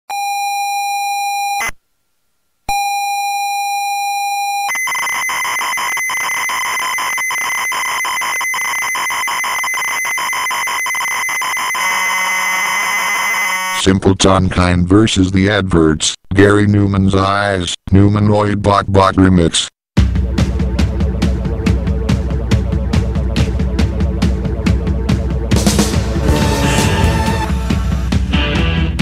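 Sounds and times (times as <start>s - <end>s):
data loading screech: 4.7s - 13.8s, 26.1s - 27.8s
high leader tone: 20.0s - 28.1s.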